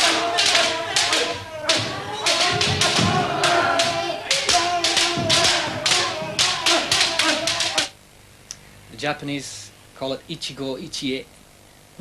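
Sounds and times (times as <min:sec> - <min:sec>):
bamboo swords clacking: 0:00.0 - 0:07.9
feet stamping: 0:00.0 - 0:07.9
long shouts: 0:00.0 - 0:07.9.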